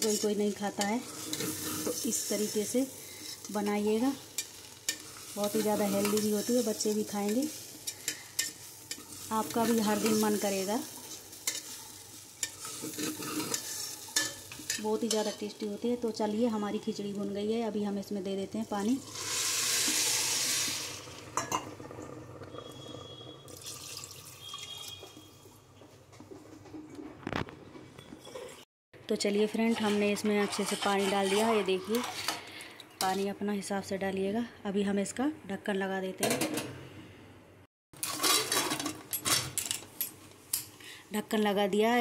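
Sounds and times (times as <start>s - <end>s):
metal lid scraping and clinking: 0.0s - 2.1s, 12.4s - 15.4s, 29.6s - 33.2s, 38.0s - 40.1s
water pouring into a pot: 19.0s - 25.3s.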